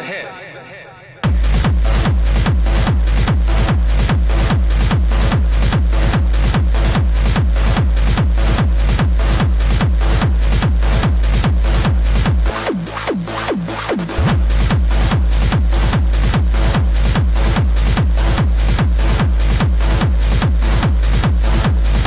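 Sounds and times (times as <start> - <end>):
dense synth layer: 0.0 - 22.0
heavy kick drum: 1.2 - 22.0.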